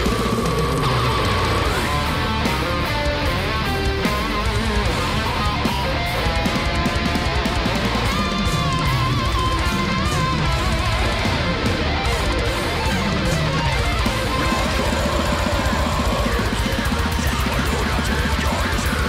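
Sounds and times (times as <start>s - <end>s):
electric guitars: 0.0s - 19.0s
fast drums: 0.0s - 19.0s.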